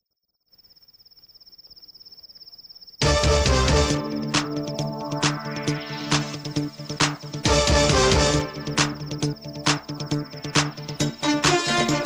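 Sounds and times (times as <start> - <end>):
cricket chirping trill: 0.0 - 7.5, 8.4 - 12.0.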